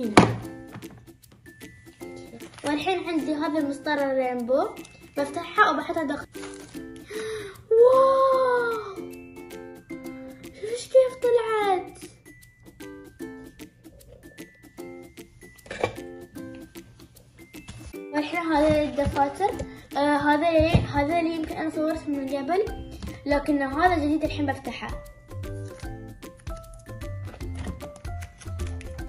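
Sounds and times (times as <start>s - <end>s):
plucked ukulele-like music: 7.7s - 29.0s.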